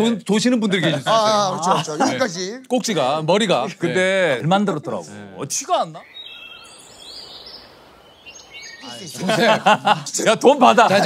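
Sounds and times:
soft outdoor hush: 0.0s - 11.0s
birds chirping: 0.7s - 11.0s.

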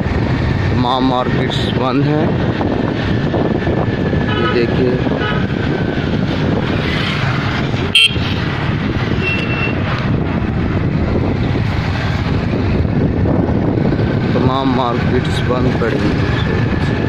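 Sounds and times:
motorcycle engine and road noise: 0.0s - 17.0s.

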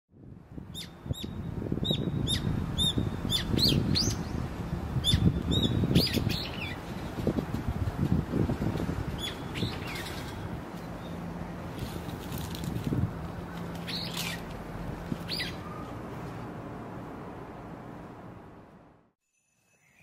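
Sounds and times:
small birds chirping: 5.0s - 7.0s, 9.1s - 11.3s, 13.7s - 14.5s, 15.2s - 16.0s.

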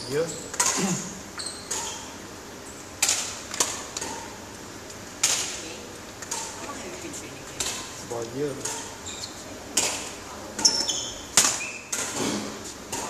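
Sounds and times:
rackets striking shuttlecock: 0.5s - 0.9s, 3.0s - 5.6s, 9.7s - 13.0s.

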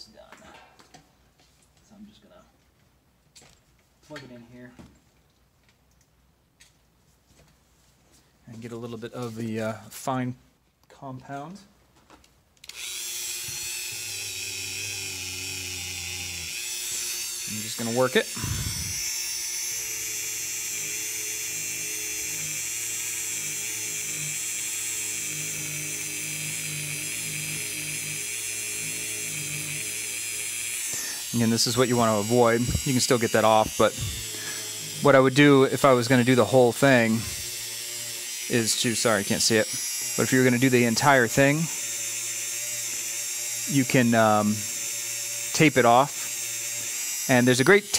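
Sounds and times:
rotary tool whining: 12.6s - 47.9s.

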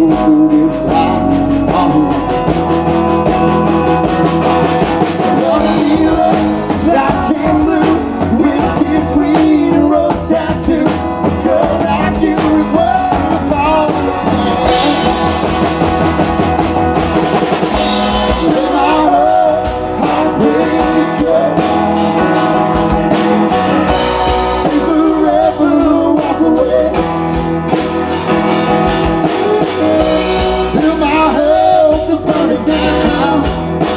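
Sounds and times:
live country-rock band playing: 0.0s - 33.9s.

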